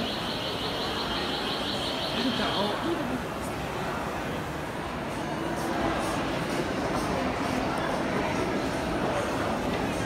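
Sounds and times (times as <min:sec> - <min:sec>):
murmur of a crowd: 0:00.0 - 0:10.0.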